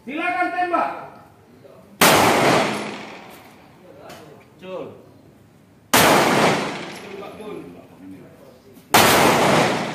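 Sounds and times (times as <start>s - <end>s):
pistol shot with echo: 2.0s - 3.6s, 5.9s - 7.4s, 8.9s - 9.9s.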